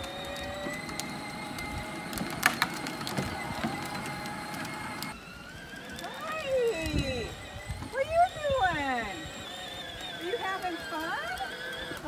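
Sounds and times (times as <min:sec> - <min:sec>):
toy electric motor whirring: 0:00.0 - 0:12.0.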